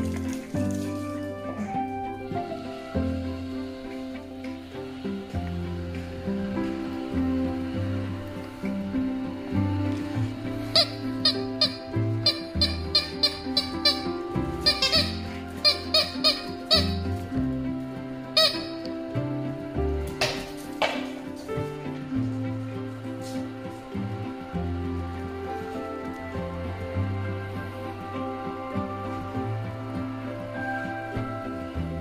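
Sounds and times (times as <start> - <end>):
background music: 0.0 - 32.0
rubber toy ball squeaking: 10.7 - 17.1, 18.4 - 18.9.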